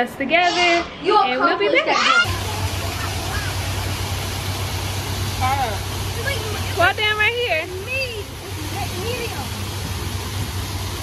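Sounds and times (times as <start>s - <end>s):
fountain water pouring into pool: 2.2s - 11.0s.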